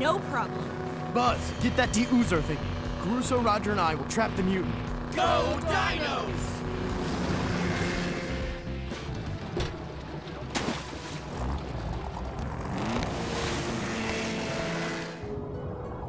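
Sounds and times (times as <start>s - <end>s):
motorboat engine: 0.0s - 16.0s
cartoon music: 5.1s - 6.6s
water splashing: 8.9s - 14.8s.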